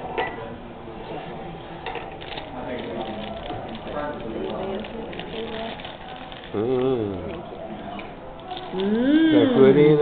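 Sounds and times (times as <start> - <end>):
people talking: 6.4 - 10.0.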